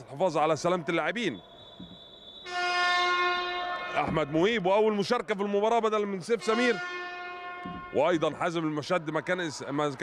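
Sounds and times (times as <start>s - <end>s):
arena buzzer steady tone: 1.4s - 4.1s, 6.4s - 8.0s.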